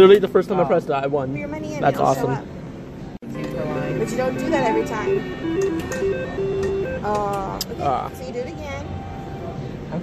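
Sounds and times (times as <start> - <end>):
slot machine beeping tune: 3.3 - 7.6.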